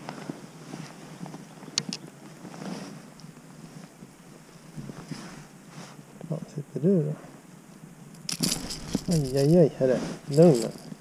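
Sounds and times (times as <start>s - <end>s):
fish handling clicks and rustles: 8.2s - 9.6s, 10.2s - 11.0s.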